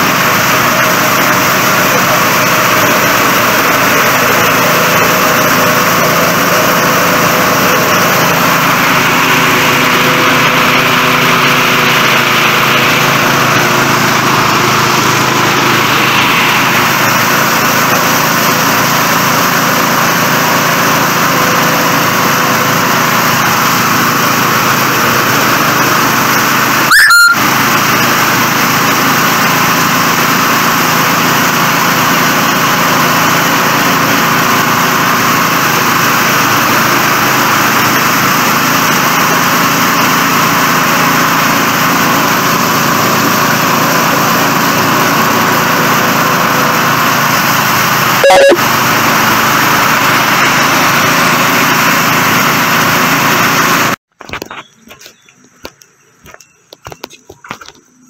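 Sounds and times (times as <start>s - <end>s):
rice thresher running: 0.0s - 58.0s.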